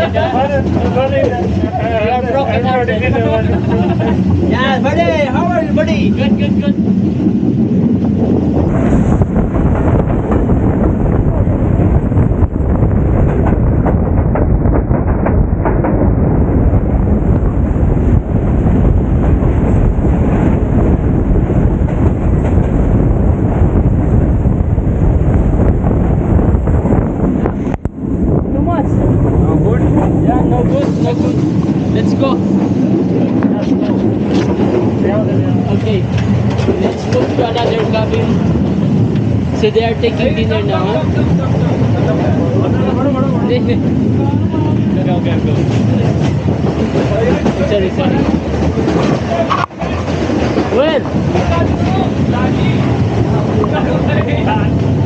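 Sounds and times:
voices: 0.0s - 6.9s, 28.5s - 55.0s
freight train passing: 0.0s - 55.0s
moving train rumble: 0.0s - 55.0s
wind on microphone: 0.0s - 55.0s.

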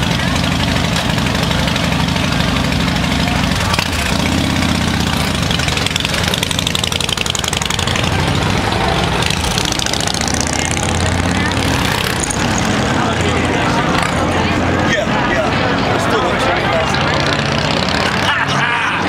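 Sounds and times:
motorcycle engines idling: 0.0s - 19.0s
motorcycle revving: 0.0s - 19.0s.

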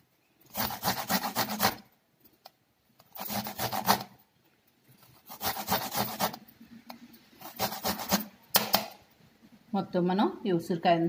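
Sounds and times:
fruit grating on metal grater: 0.5s - 1.9s, 3.1s - 4.2s, 5.2s - 6.4s, 7.4s - 8.3s.

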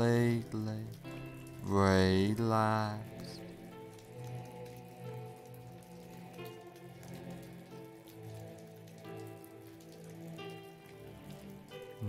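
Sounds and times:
ambient music with held chords: 0.0s - 12.0s
falling rain: 0.0s - 12.0s.

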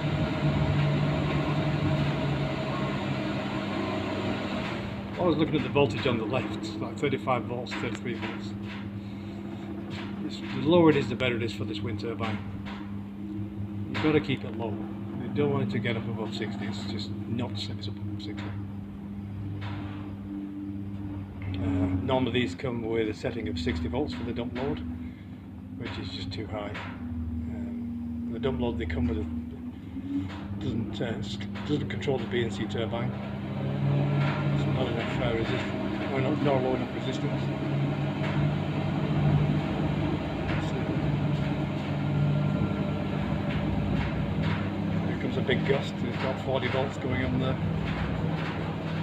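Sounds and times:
inverter electrical hum: 0.0s - 49.0s.

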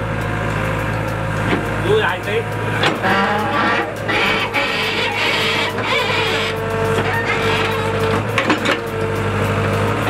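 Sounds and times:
excavator engine running: 0.0s - 10.0s
hydraulic whine: 2.8s - 9.0s.

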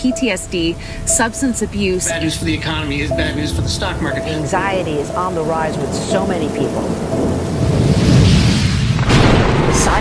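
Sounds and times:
deep thunder-like rumble: 0.1s - 10.0s
rain-like hiss: 0.7s - 9.9s.

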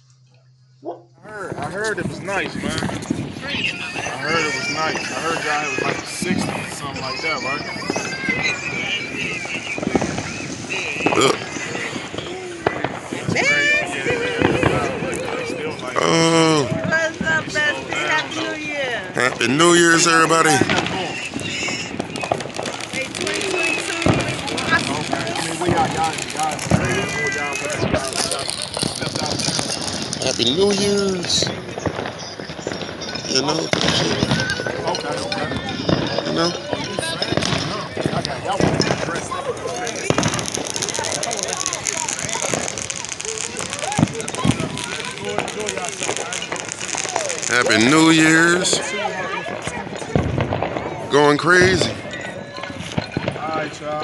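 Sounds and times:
voices calling out: 0.0s - 54.0s
firework pops and bangs: 1.5s - 54.0s.

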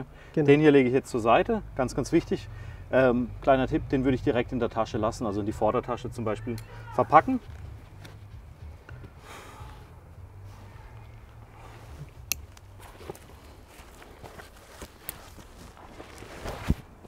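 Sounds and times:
low steady rumble: 0.0s - 16.2s
bag and strap rustling: 10.4s - 17.0s
strap buckle clicks: 12.0s - 13.2s.

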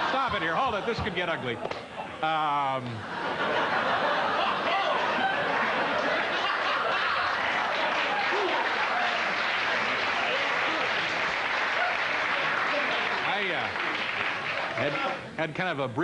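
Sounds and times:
audience laughing: 2.8s - 13.6s
audience clapping: 5.4s - 15.2s.

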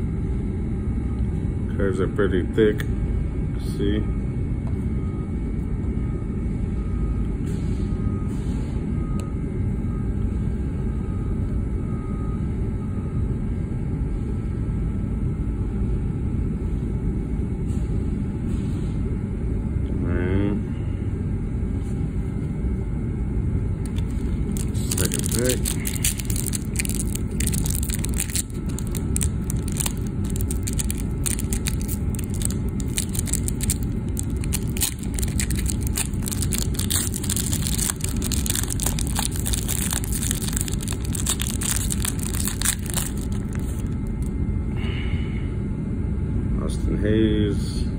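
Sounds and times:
steady low rumble: 21.2s - 46.6s
foil wrapper crinkling: 23.8s - 44.3s
wrapper tearing open: 23.8s - 44.3s.

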